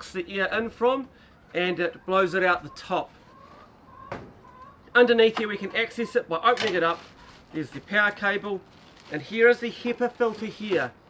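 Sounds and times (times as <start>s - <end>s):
faint bird calls: 1.0s - 4.9s.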